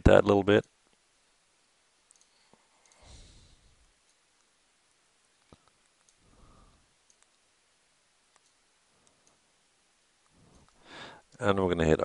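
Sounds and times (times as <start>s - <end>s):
computer mouse clicks: 2.0s - 3.1s, 5.4s - 6.2s, 7.0s - 7.4s, 8.3s - 9.4s.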